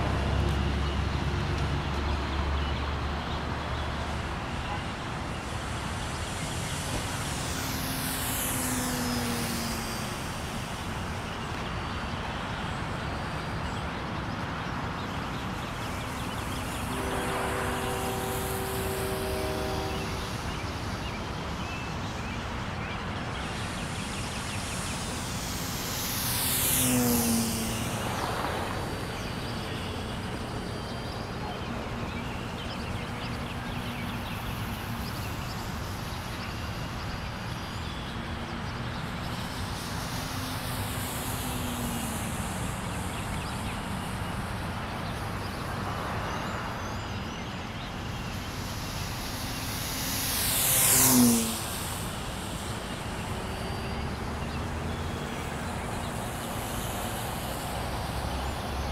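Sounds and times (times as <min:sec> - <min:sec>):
model airplane motor whine: 0:02.9 - 0:14.2, 0:14.8 - 0:58.9
steady hiss: 0:15.1 - 0:58.9.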